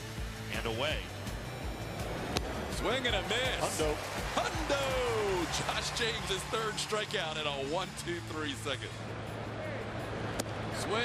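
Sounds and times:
background music: 0:00.0 - 0:11.0
ballpark crowd noise: 0:02.0 - 0:11.0.

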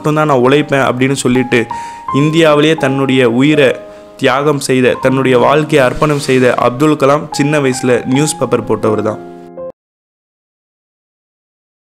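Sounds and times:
man narrating: 0:00.0 - 0:09.3
background music: 0:00.0 - 0:09.8.

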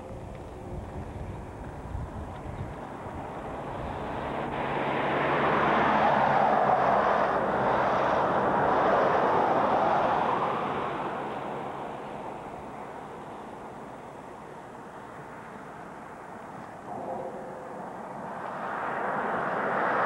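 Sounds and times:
vehicle passing on road: 0:00.1 - 0:20.0.

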